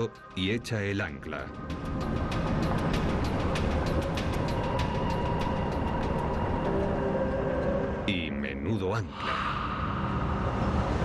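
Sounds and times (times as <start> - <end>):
background music: 0.0 - 11.0
low rumble: 9.1 - 11.0.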